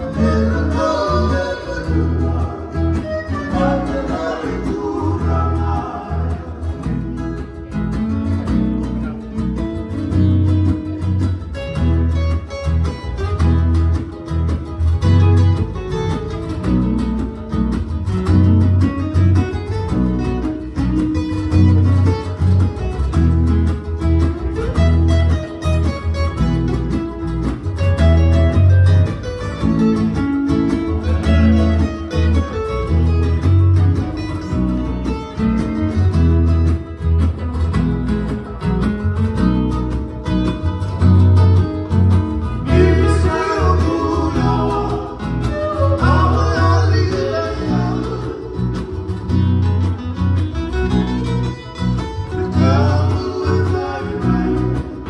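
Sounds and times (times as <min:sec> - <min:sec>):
pulsing bass line: 0:00.0 - 0:55.0
string band of guitars and ukulele: 0:00.0 - 0:55.0.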